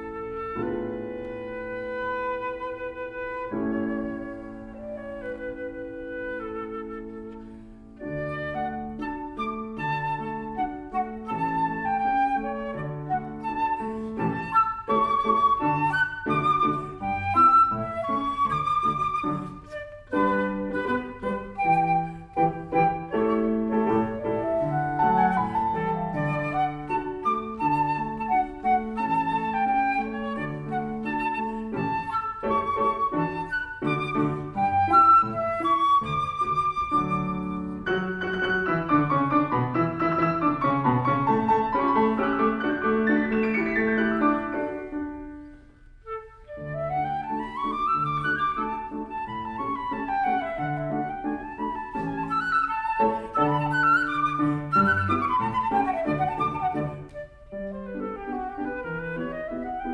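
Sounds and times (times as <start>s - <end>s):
flute: 0.0s - 59.9s
piano: 0.0s - 59.9s.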